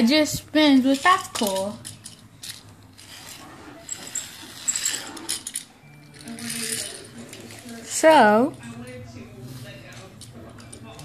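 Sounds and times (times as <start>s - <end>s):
plastic toy clicking and clinking: 0.8s - 9.0s.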